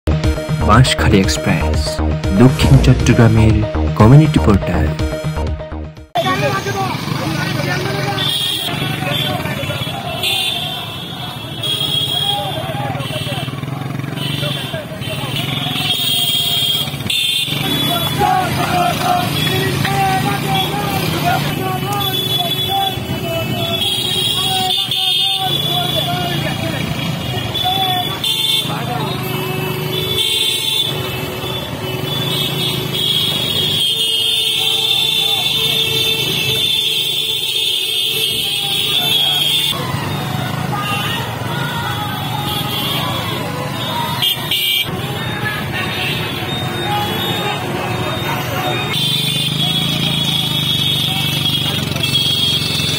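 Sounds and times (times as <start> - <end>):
horns tooting: 0.5 - 52.9
motorcycle engines: 6.2 - 52.9
crowd of men shouting: 17.5 - 28.2.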